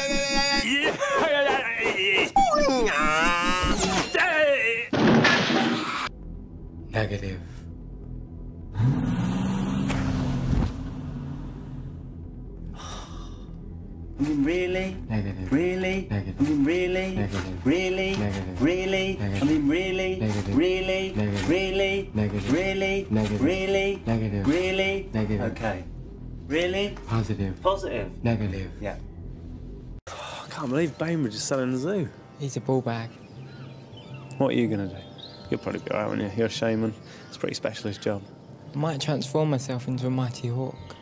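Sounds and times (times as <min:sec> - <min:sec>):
man singing short sliding notes: 0:00.0 - 0:00.7
man wailing and whimpering: 0:00.0 - 0:04.1
low musical accompaniment: 0:06.1 - 0:10.4, 0:11.2 - 0:41.0.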